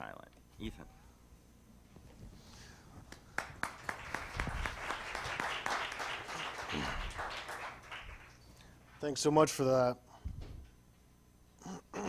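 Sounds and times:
audience applauding: 3.1s - 8.5s.

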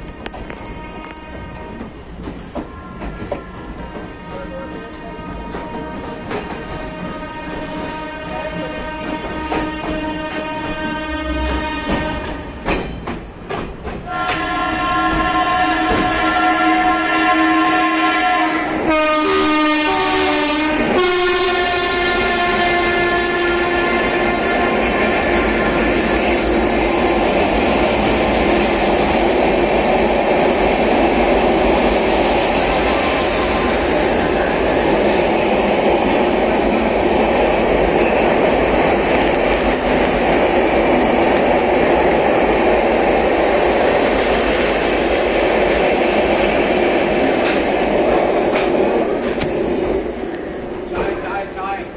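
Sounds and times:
train running through station: 0.0s - 51.9s
locomotive horn blast: 0.1s - 1.9s, 2.6s - 12.6s, 14.1s - 26.4s.

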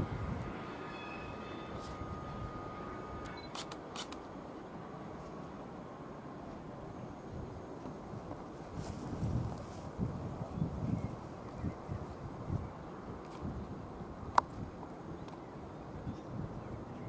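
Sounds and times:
faint steady whine: 0.0s - 14.2s
distant train rumble: 0.0s - 17.0s
sharp clicks: 3.2s - 4.3s.

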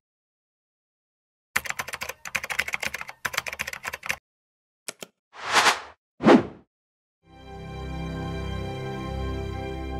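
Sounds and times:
computer keyboard typing: 1.6s - 4.2s.

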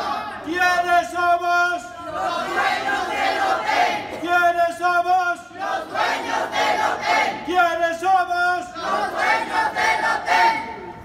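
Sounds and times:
crowd shouting a slogan: 0.0s - 1.2s, 1.8s - 7.8s, 8.6s - 10.8s.

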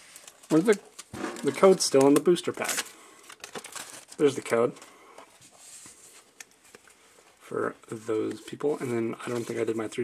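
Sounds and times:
cards rustling: 0.0s - 10.0s.

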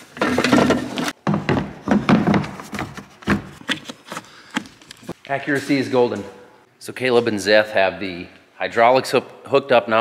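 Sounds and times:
handling noise rubbing and clattering: 0.0s - 6.2s.

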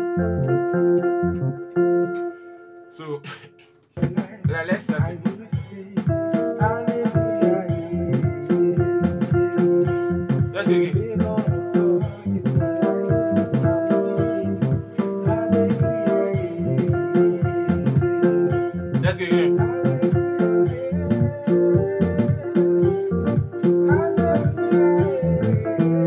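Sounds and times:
electronic keyboard groove: 0.0s - 26.0s.

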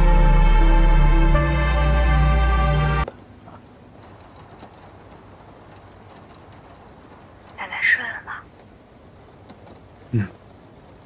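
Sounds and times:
light rain falling: 3.0s - 11.0s.

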